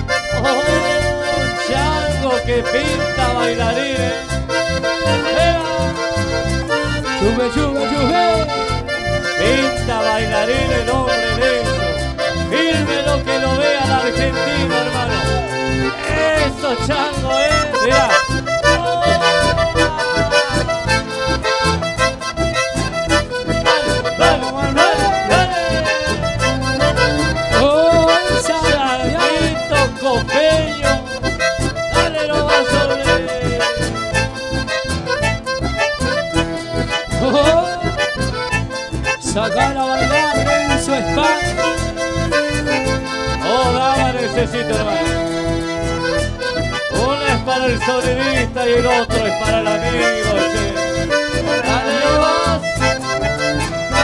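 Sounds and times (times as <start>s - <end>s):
accordion dance music: 0.0s - 54.0s.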